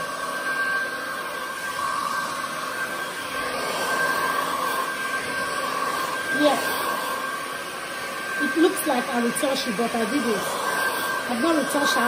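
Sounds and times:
hair dryer running: 0.0 - 12.0.

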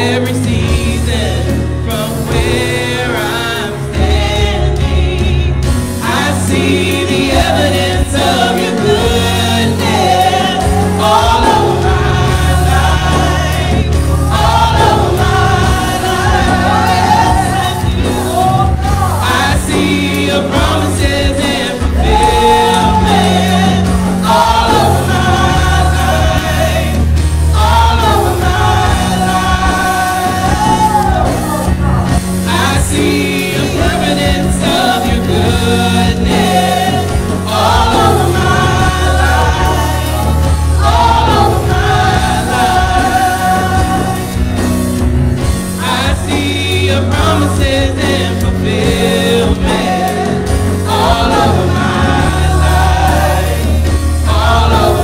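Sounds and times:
drums: 0.0 - 55.0
gospel group singing: 0.0 - 55.0
keyboard: 0.0 - 55.0
low bass: 7.9 - 55.0.

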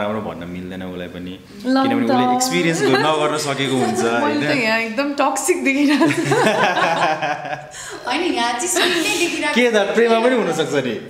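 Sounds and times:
woman talking: 1.6 - 6.4, 7.9 - 10.4.

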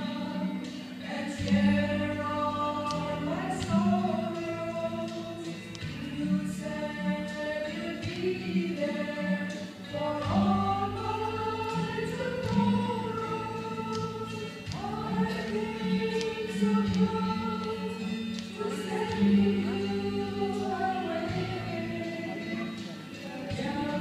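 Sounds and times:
women singing hymn in harmony: 0.0 - 24.0.

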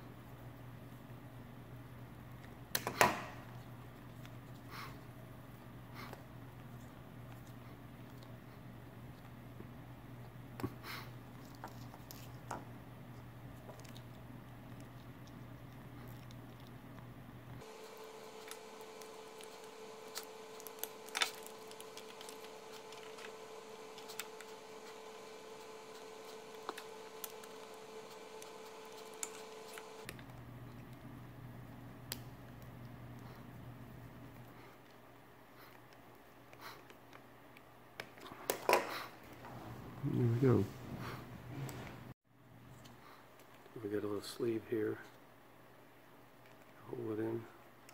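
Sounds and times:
low steady hum: 0.0 - 47.9
high steady whine with hiss: 17.6 - 30.1.

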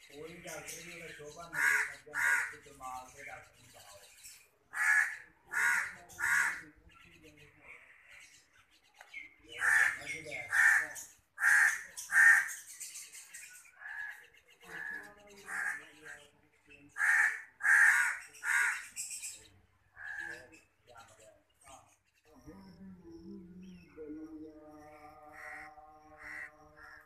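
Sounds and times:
bird giving harsh rasping calls: 0.0 - 3.2, 4.7 - 6.8, 9.5 - 16.1, 16.9 - 20.8, 25.3 - 27.0.

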